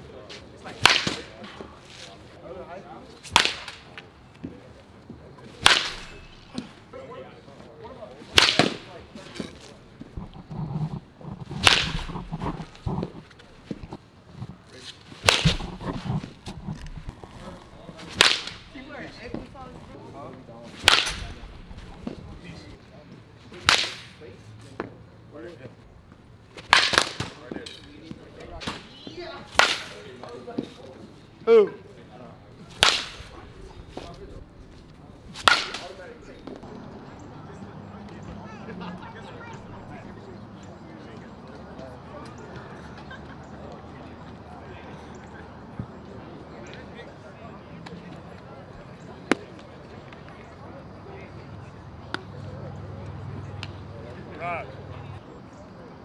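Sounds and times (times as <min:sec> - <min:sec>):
baseball bat hitting balls: 0:00.7 - 0:01.4, 0:03.2 - 0:04.0, 0:05.6 - 0:06.7, 0:08.3 - 0:14.0, 0:15.2 - 0:19.8, 0:20.8 - 0:22.3, 0:23.5 - 0:24.2, 0:26.6 - 0:30.7, 0:32.6 - 0:34.3, 0:35.3 - 0:36.8.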